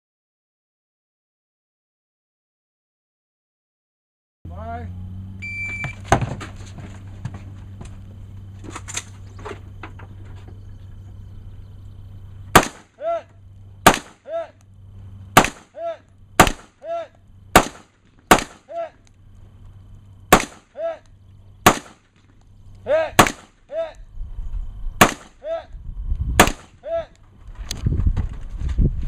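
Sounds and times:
gunshots: 12.5s - 13.0s, 13.8s - 14.3s, 15.3s - 15.8s, 16.4s - 16.8s, 17.5s - 18.8s, 20.3s - 20.8s, 21.6s - 22.3s, 23.1s - 23.7s, 25.0s - 25.4s, 26.4s - 26.8s
ringing gunshot echo: 12.5s - 13.0s, 13.8s - 14.2s, 15.4s - 15.8s, 16.4s - 16.8s, 17.6s - 18.7s, 20.3s - 20.8s, 21.6s - 22.2s, 23.2s - 23.6s, 25.0s - 25.4s, 26.4s - 26.7s
low rumble: 22.3s - 25.0s, 25.7s - 29.0s.

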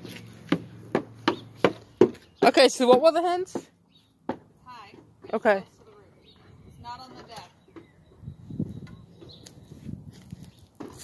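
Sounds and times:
footsteps crunching on dry leaves: 0.0s - 0.8s, 9.4s - 11.0s.

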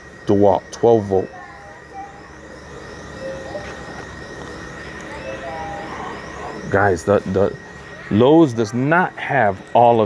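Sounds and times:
distant shoppers' voices: 0.0s - 10.0s
store background hum: 0.0s - 10.0s
thin high-pitched tone: 1.0s - 10.0s.

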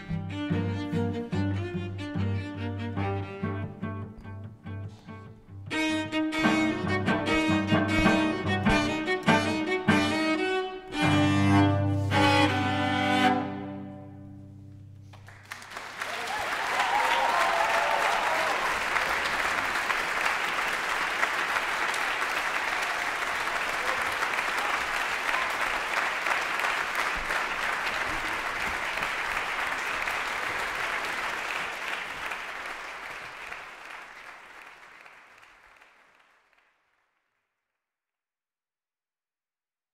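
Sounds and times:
audience applauding: 15.0s - 37.2s.

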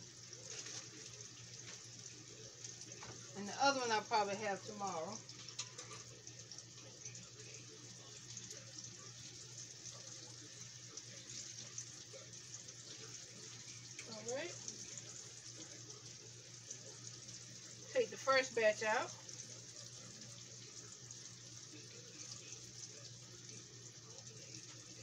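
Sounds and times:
food sizzling in oil: 0.0s - 25.0s.

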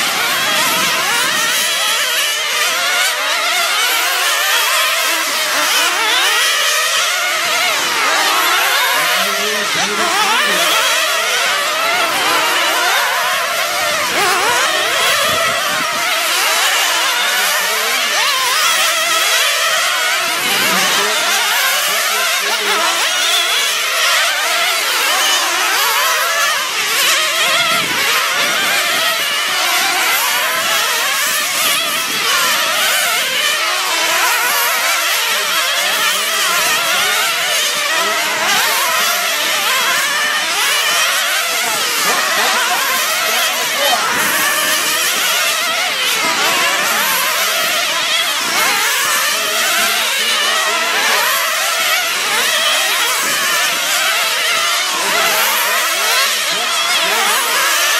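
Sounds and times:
model car engines whining: 0.0s - 57.9s.

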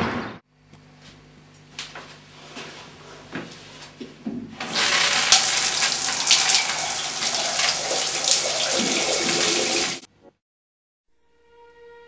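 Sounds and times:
shower spraying water on tiles: 4.6s - 10.1s.

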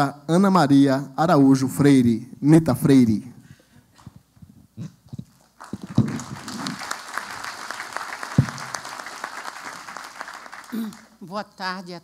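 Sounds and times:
audience applauding: 5.5s - 11.2s
single thump: 8.4s - 8.6s.

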